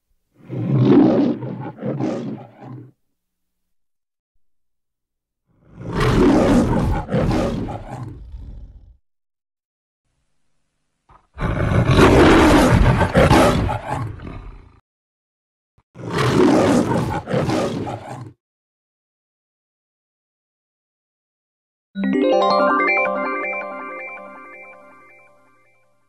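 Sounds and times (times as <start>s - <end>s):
lion roaring: 0.4s - 3.0s, 5.6s - 9.0s, 11.1s - 14.8s, 16.0s - 18.4s.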